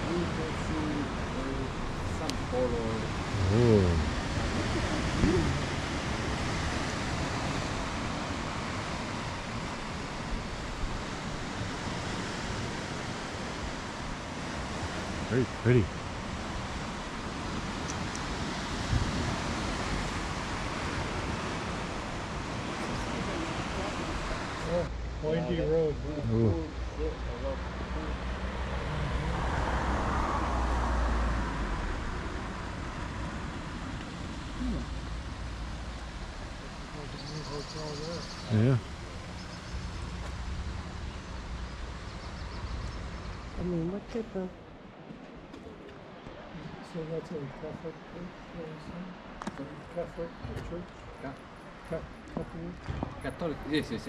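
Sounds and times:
wind on microphone: 0.0s - 24.7s
sea surf rushing: 0.0s - 42.1s
low thump: 52.8s - 53.3s.

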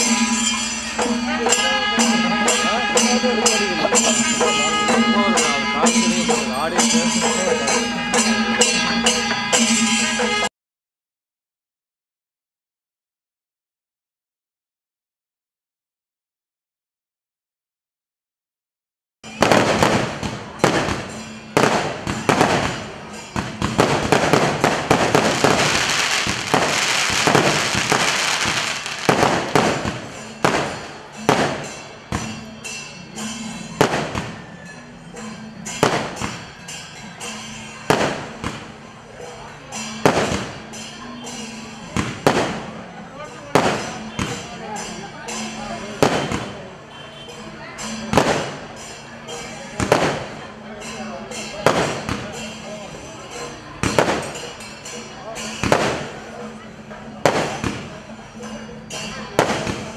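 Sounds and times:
fireworks crackling: 19.4s - 32.4s, 59.4s - 59.9s
fireworks sharp bangs: 19.4s - 32.4s, 33.8s - 34.4s, 37.9s - 38.7s, 40.0s - 40.6s, 42.0s - 42.6s, 43.5s - 44.4s, 46.0s - 46.6s, 48.1s - 48.6s, 49.8s - 50.4s, 51.6s - 52.3s, 55.6s - 56.1s, 57.2s - 57.9s, 59.4s - 59.9s.

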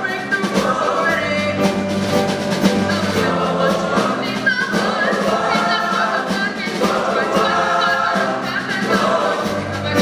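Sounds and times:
boys' choir singing: 0.0s - 10.0s.

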